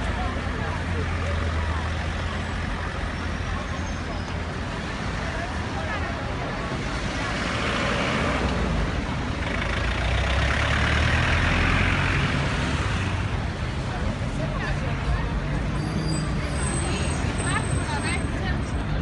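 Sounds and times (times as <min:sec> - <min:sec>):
bus diesel engine running: 0:00.0 - 0:19.0
crowd voices: 0:00.0 - 0:19.0
passing car traffic: 0:00.0 - 0:19.0.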